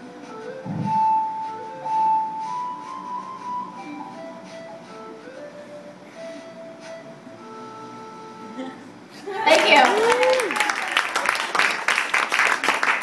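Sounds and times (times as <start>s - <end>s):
flute-like ocarina melody: 0.0s - 8.6s.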